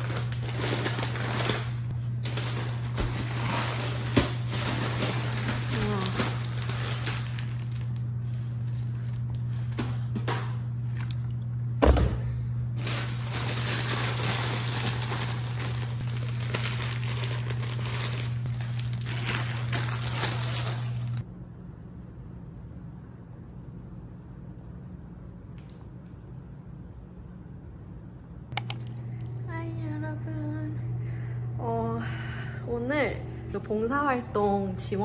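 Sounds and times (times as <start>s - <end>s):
plastic packets crinkling: 0.0s - 9.5s, 12.8s - 21.2s
steady low hum: 0.0s - 35.0s
sharp clicks: 28.6s - 29.0s.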